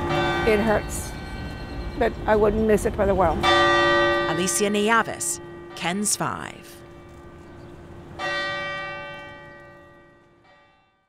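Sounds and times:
church bell tolling: 0:00.0 - 0:11.0.

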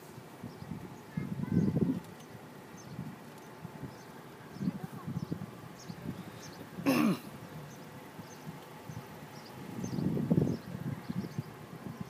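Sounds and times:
faint outdoor background noise: 0:00.0 - 0:12.0
person clearing throat: 0:06.8 - 0:07.3.

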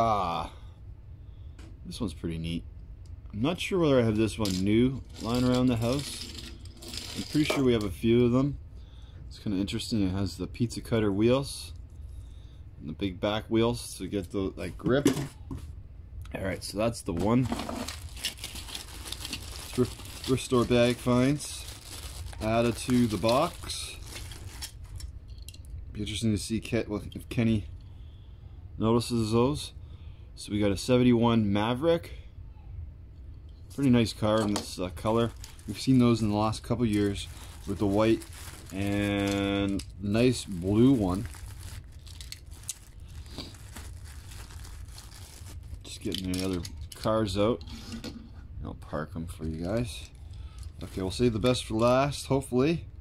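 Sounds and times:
low steady hum: 0:00.0 - 0:53.0
plastic bag crinkling: 0:04.0 - 0:08.0, 0:17.1 - 0:25.1, 0:33.7 - 0:47.1, 0:49.8 - 0:52.0.

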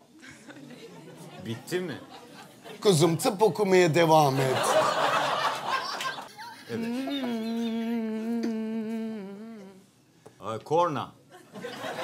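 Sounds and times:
woman humming a steady note: 0:06.7 - 0:09.9.

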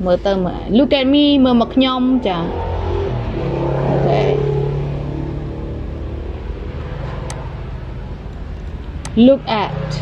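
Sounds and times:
low motor hum: 0:00.0 - 0:10.0.

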